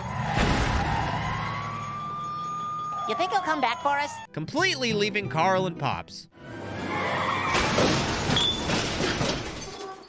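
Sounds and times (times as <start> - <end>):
siren rising tone: 0.0 - 4.3.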